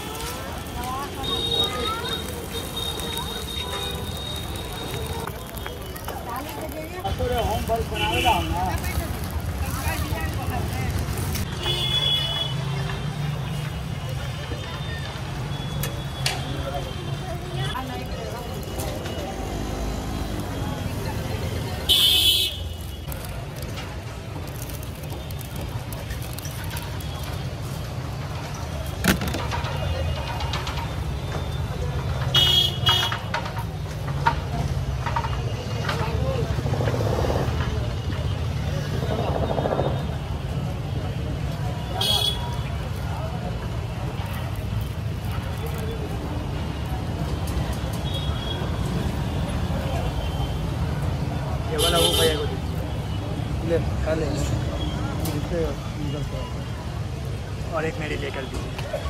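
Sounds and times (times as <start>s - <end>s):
street traffic rumble: 0.0s - 59.0s
voices: 0.0s - 59.0s.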